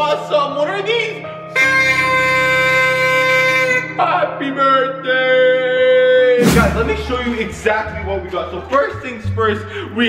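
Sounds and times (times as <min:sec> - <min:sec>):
party horn buzzing note: 0:01.6 - 0:03.9.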